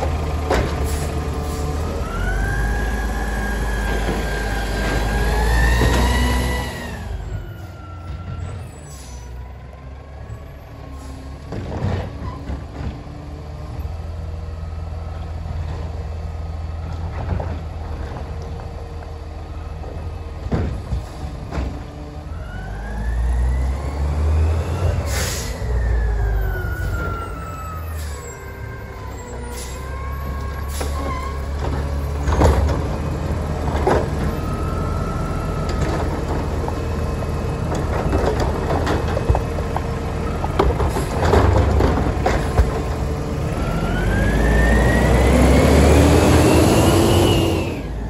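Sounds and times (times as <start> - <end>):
garbage truck engine running: 0.0 - 48.0.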